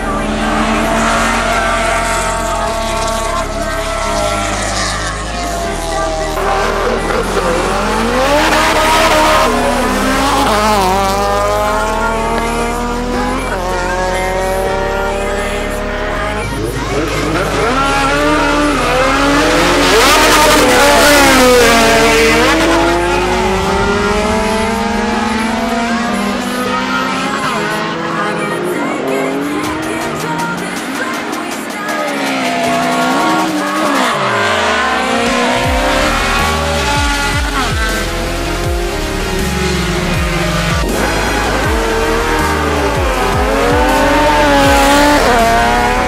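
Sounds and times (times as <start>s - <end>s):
tire squeal: 0.0s - 11.5s
race car engines accelerating: 0.0s - 46.0s
dance music with stepped bass: 32.3s - 46.0s.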